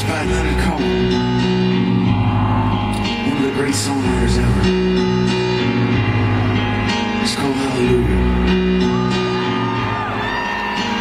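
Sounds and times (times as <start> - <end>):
live band playing held chords: 0.0 - 11.0.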